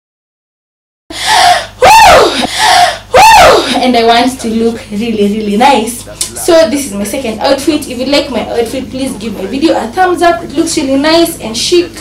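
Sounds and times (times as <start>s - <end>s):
woman gasping: 1.1s - 3.8s.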